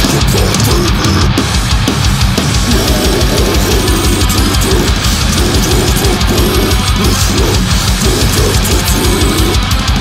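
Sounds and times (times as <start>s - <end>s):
death metal song: 0.0s - 10.0s.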